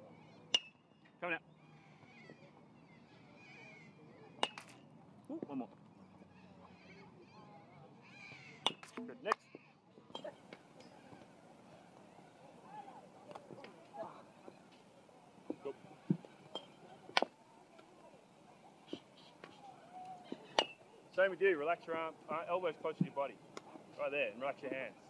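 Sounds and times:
baseball bat hitting ball: 0:04.4 - 0:04.8, 0:08.6 - 0:09.0, 0:20.4 - 0:20.8.

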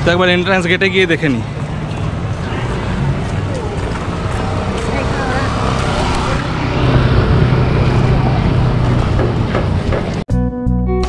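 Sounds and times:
people talking: 0:00.0 - 0:06.5
vehicle engine hum: 0:00.0 - 0:10.3.

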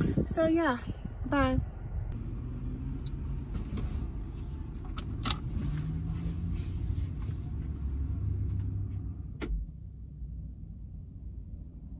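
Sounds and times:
car engine rumble inside cabin: 0:00.0 - 0:11.9.

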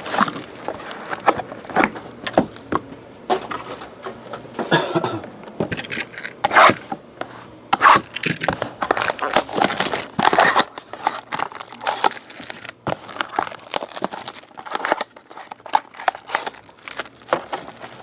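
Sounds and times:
packaging crinkling and tearing: 0:00.0 - 0:02.7, 0:07.8 - 0:18.0.

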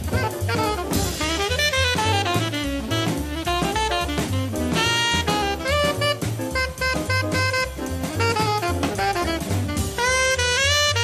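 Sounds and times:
alto saxophone: 0:00.0 - 0:11.0
drums: 0:00.0 - 0:11.0
piano: 0:00.0 - 0:11.0
walking bass: 0:00.0 - 0:11.0.

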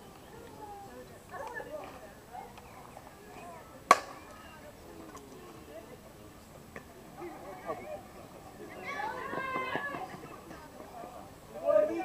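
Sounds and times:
faint voices: 0:00.0 - 0:12.0
bat cracking on softball: 0:03.9 - 0:04.4.

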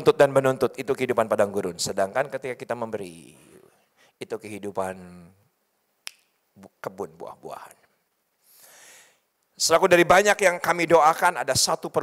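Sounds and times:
man speaking: 0:00.0 - 0:05.4, 0:06.5 - 0:07.9, 0:09.6 - 0:12.0.

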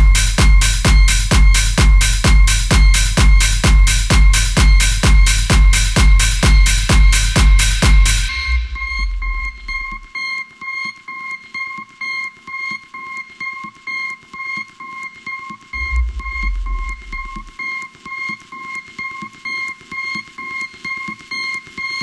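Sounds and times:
high synth beep: 0:08.3 - 0:10.4.

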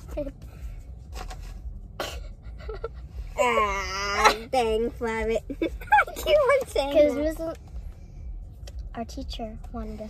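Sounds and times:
steady low rumble: 0:00.0 - 0:10.0
person laughing: 0:02.0 - 0:03.4.

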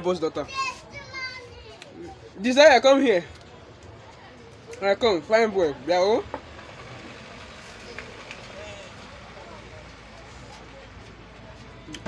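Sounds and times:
steady background noise: 0:00.0 - 0:12.0
distant voices talking: 0:03.0 - 0:12.0.

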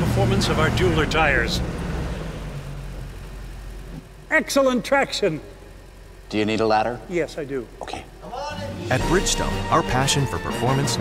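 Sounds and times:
engine rumble: 0:00.0 - 0:11.0.

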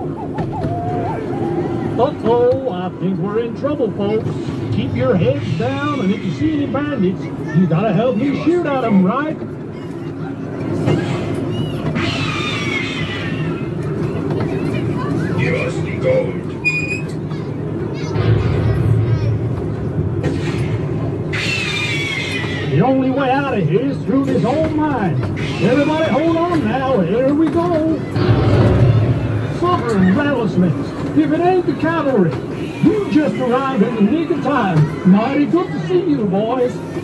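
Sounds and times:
ride train rumbling on track: 0:00.0 - 0:37.0.

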